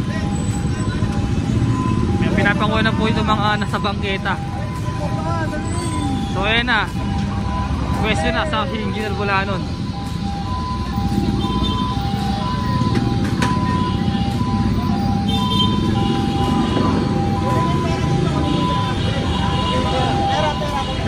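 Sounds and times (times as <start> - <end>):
crowd chatter: 0.0 - 21.0
traffic: 0.0 - 21.0.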